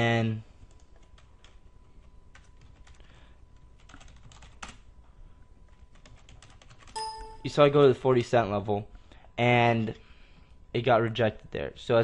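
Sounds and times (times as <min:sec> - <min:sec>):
computer keyboard typing: 0:00.7 - 0:01.6, 0:02.3 - 0:03.2, 0:03.8 - 0:04.8, 0:05.7 - 0:07.6.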